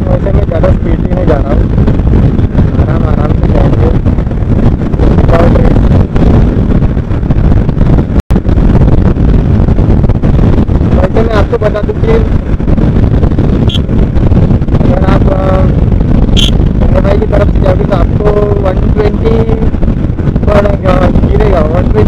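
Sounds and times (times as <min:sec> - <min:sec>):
wind rush on microphone: 0:00.0 - 0:22.0
muffled voice: 0:02.8 - 0:04.0, 0:05.3 - 0:05.8, 0:16.4 - 0:19.7, 0:20.5 - 0:22.0.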